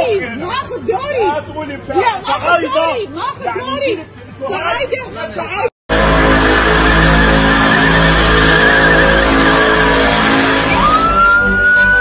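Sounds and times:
rising squeal: 6.0s - 12.0s
tyres screeching: 6.2s - 12.0s.

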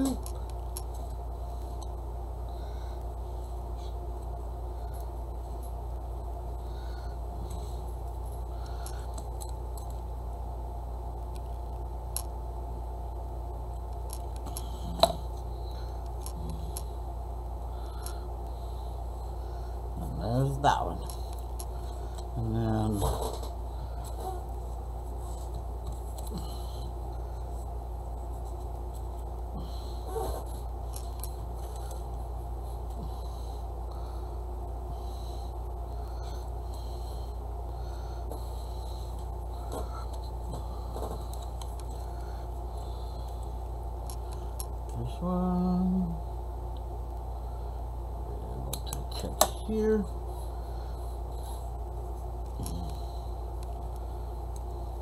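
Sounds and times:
person humming: 0.0s - 0.4s, 45.0s - 46.2s
low background hum: 0.0s - 55.0s.

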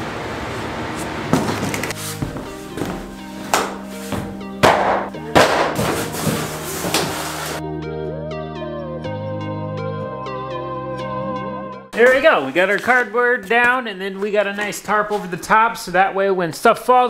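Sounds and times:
background music: 1.9s - 12.8s
cardboard thudding on wooden floor: 4.2s - 7.3s.

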